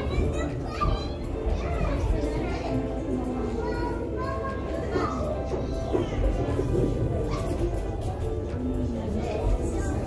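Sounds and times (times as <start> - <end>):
background music: 0.0 - 10.0
children's voices: 0.0 - 10.0
indistinct chatter: 0.0 - 10.0.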